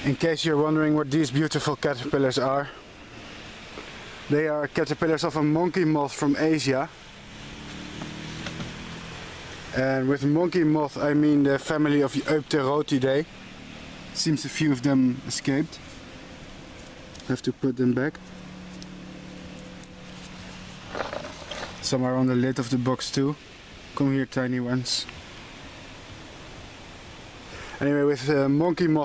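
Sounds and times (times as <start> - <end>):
background hiss: 0.0 - 29.0
low engine-like hum: 0.0 - 29.0.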